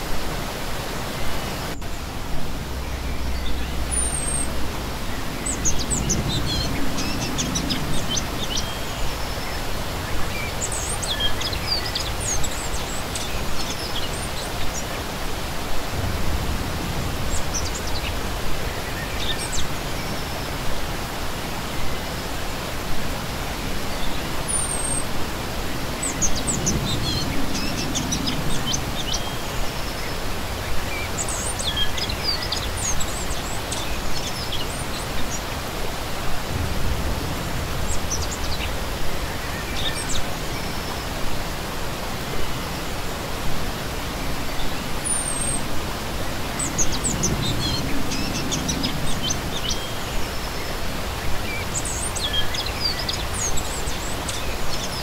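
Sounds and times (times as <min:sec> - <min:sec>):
songbirds chirping: 0:00.0 - 0:55.0
stream splashing over stones: 0:00.0 - 0:55.0.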